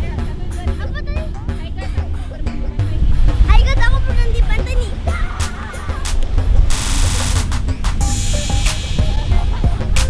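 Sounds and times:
heavy low rumble: 0.0 - 10.0
child calling: 3.5 - 5.8.

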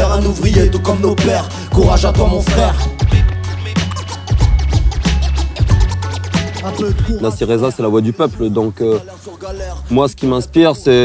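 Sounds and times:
hip hop beat with bass line: 0.0 - 11.0.

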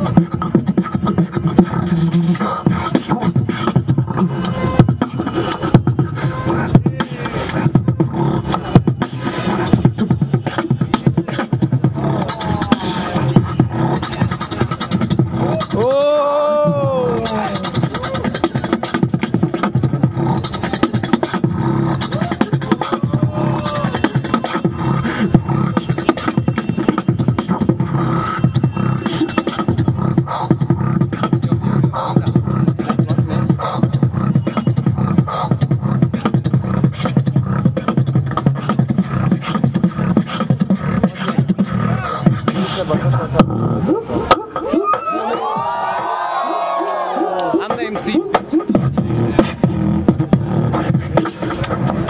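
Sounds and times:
pitched vocal line: 0.0 - 28.4, 47.1 - 51.6
beatboxing mouth percussion: 0.0 - 45.2, 47.3 - 52.0.

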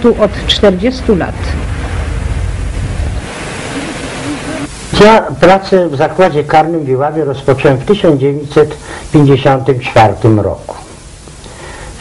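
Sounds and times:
wind buffeting microphone: 0.0 - 4.9.

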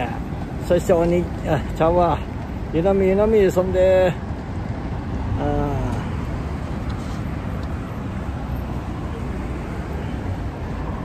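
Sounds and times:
passing traffic rumble: 0.0 - 11.0.

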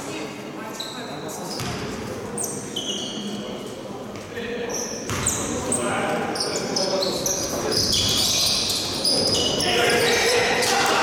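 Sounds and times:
voices echoing: 0.0 - 11.0
shoes squeaking on court: 0.8 - 3.6, 4.2 - 10.5
basketball bouncing: 5.1 - 5.3.

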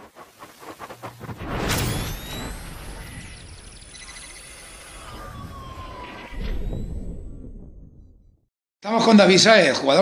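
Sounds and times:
tone sliding downward: 1.7 - 7.9.

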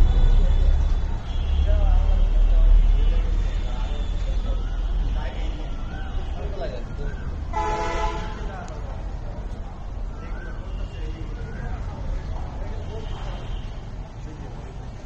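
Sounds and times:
vehicle horn: 0.0 - 4.2, 7.5 - 8.5
faint distant voices: 0.0 - 15.0
low roadside rumble: 0.0 - 15.0.

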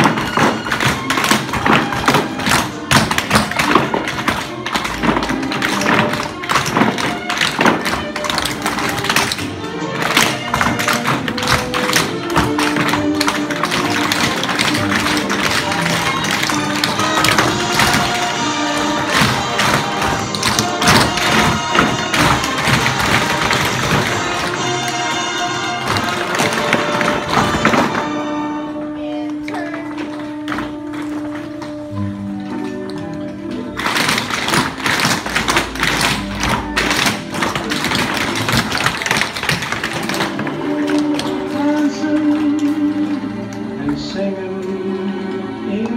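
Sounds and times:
tap shoes on wooden floor: 0.0 - 28.1, 32.6 - 42.9
recorded music: 0.0 - 45.9.

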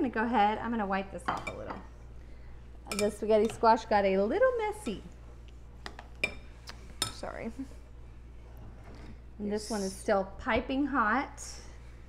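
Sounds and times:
metal utensils clinking on glass bowl: 2.9 - 3.6.

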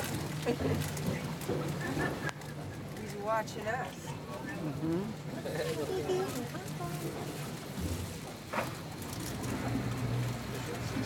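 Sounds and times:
wind and water noise: 0.0 - 11.0.

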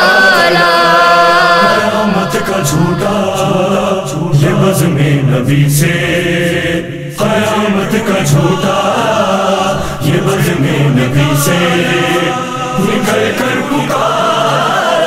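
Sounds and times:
low drone: 0.0 - 14.1
men singing in chorus: 0.0 - 15.0.

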